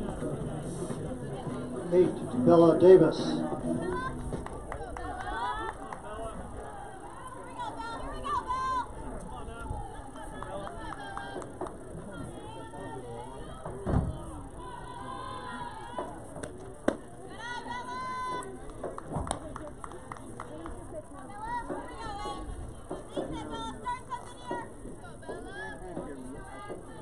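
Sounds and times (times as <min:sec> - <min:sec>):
girls calling and chanting: 0:03.4 - 0:16.4, 0:21.0 - 0:27.0.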